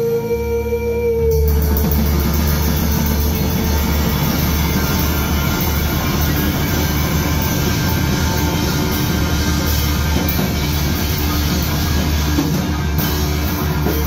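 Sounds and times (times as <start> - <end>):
rock band playing: 0.0 - 14.0
cymbal hits: 1.3 - 14.0.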